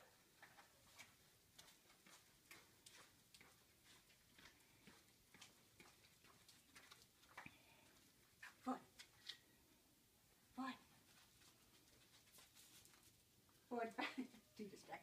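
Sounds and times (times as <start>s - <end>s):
dog claws ticking on concrete: 0.4s - 8.1s.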